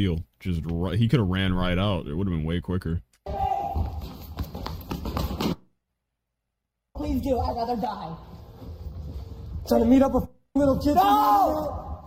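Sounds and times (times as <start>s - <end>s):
running footsteps on hard floor: 3.4s - 5.7s.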